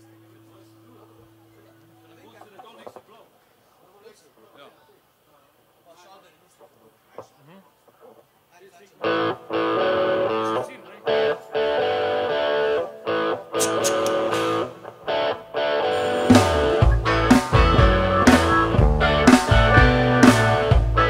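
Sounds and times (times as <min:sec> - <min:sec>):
electric guitar chord riff: 0:09.0 - 0:21.0
drums: 0:13.6 - 0:15.0, 0:15.9 - 0:21.0
bass guitar: 0:15.9 - 0:21.0.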